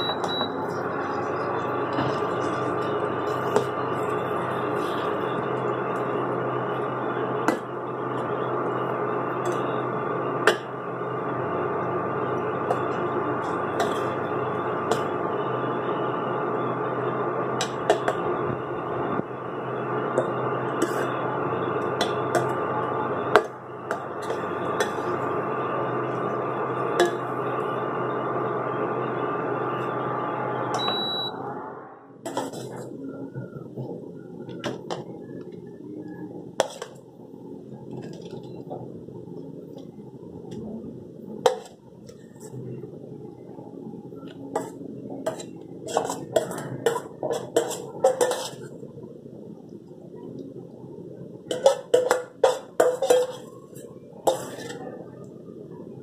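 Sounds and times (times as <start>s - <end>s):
short high beep: 0.0s - 0.6s, 30.6s - 31.5s
steady hum: 0.0s - 56.0s.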